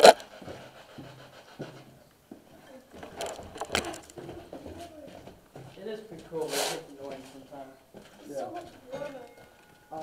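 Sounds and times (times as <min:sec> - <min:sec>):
low indistinct voices: 0:02.5 - 0:10.0.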